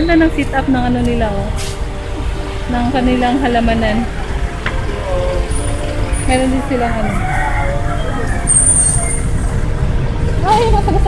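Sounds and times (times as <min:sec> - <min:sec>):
low rumble of road traffic: 0:00.0 - 0:11.0
high-pitched brake squeal: 0:05.0 - 0:09.6.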